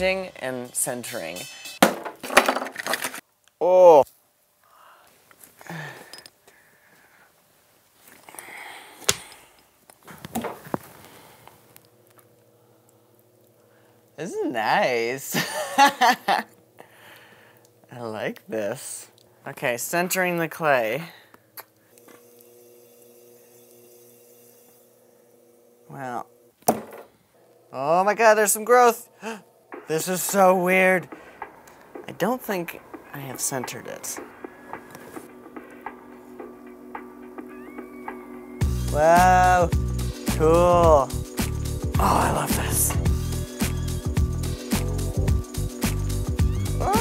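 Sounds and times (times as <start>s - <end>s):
pottery wheel motor humming: 21.9s - 30.4s.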